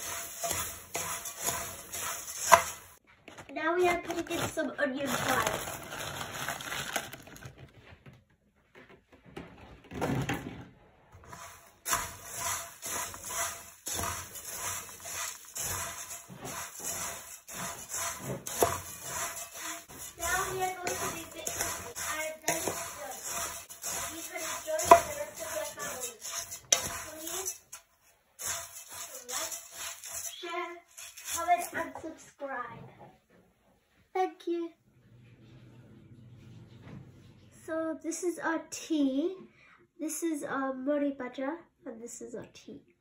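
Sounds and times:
spatula stirring in metal pot: 0.0s - 3.0s, 11.2s - 32.2s
person talking: 3.5s - 5.7s, 20.1s - 27.6s, 30.2s - 32.8s.

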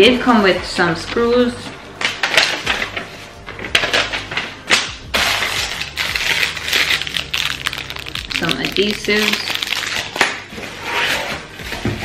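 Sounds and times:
plastic packaging crinkling: 5.2s - 10.5s.

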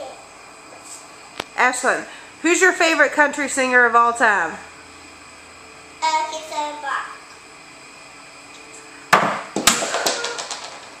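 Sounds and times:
sharp clatter of knocks: 9.2s - 11.0s.

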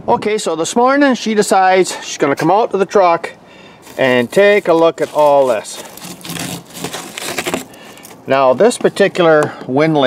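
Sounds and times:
snow and ice crunching and scraping: 3.8s - 9.1s.

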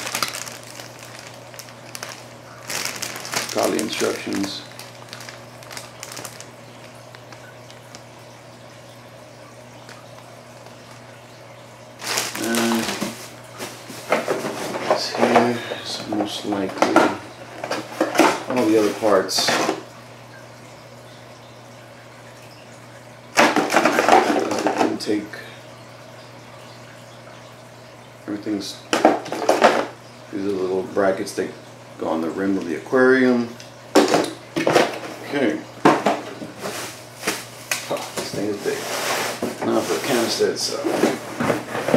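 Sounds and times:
plastic bag crinkling: 0.0s - 8.3s, 12.0s - 15.5s
low hum and hiss: 0.0s - 41.9s.

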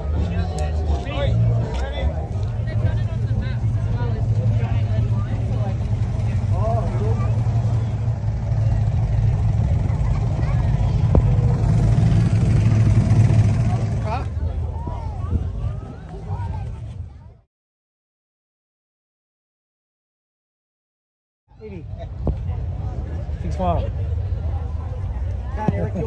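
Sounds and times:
faint crowd chatter: 0.0s - 17.5s, 21.5s - 26.0s
car engine idling: 2.3s - 14.6s.

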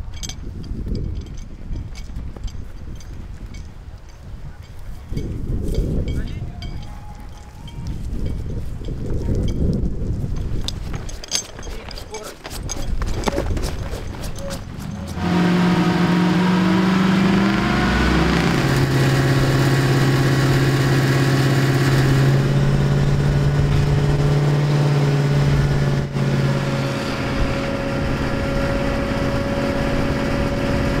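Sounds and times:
low rumble: 12.9s - 30.2s
water pump engine droning: 14.4s - 31.0s.

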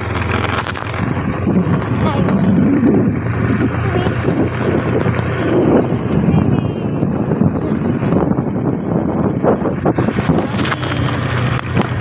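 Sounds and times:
motorcycle engine running: 0.0s - 12.0s
wind rushing over microphone: 0.0s - 12.0s.

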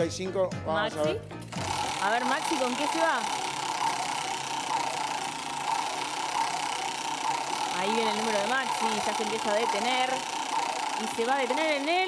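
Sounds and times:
prize wheel rattling past pointer: 1.5s - 12.0s.

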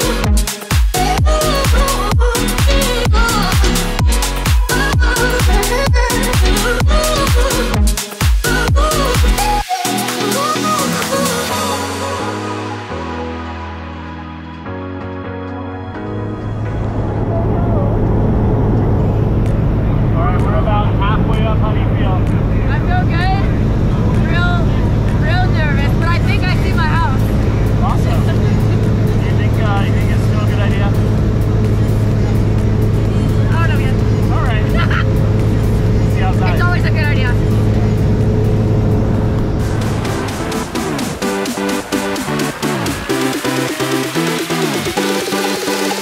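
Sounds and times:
propeller plane engine droning: 16.4s - 44.2s.

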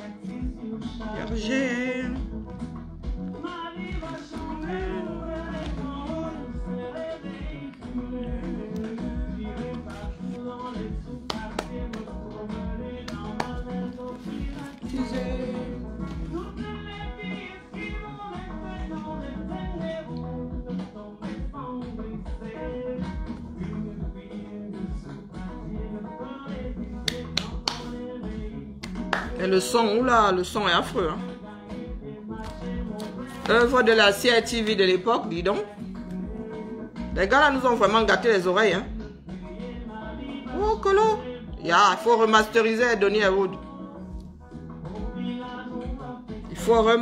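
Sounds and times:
old song with singer and band: 0.0s - 47.0s.

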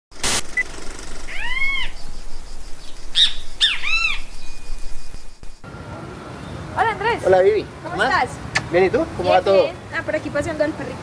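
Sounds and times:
short burst of noise: 0.1s - 2.6s
animal cries: 1.3s - 2.0s.

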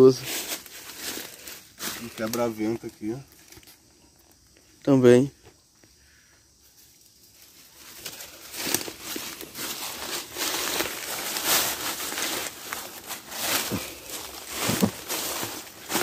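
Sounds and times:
footsteps crunching dry leaves: 0.0s - 3.8s, 7.2s - 16.0s.

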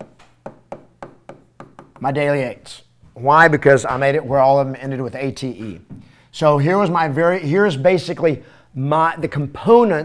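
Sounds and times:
stylus tapping on glass: 0.0s - 2.1s.

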